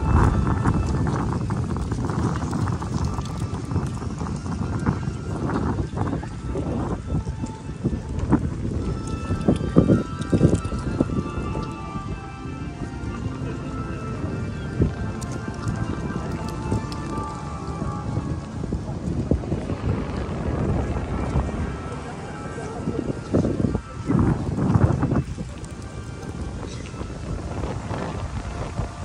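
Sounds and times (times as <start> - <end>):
music with held notes: 0.0 - 29.0
low continuous rumble: 6.0 - 29.0.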